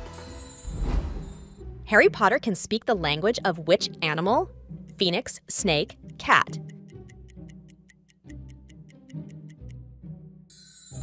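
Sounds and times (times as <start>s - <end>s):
soft background music: 0.0s - 11.0s
clock-like ticking: 4.9s - 9.8s.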